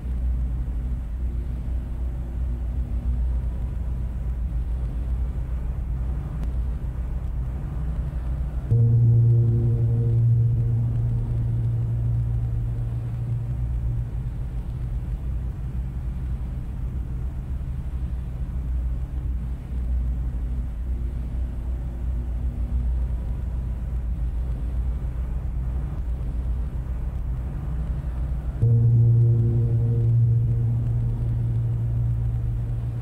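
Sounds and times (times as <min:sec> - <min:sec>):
piano playing deep bass notes: 0:08.7 - 0:15.1, 0:28.6 - 0:33.0.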